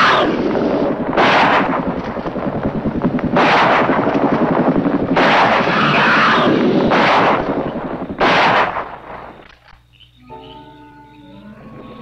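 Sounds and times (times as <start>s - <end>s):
loud echoing gunshots: 0.0s - 9.5s
low rumbling background: 0.0s - 9.5s.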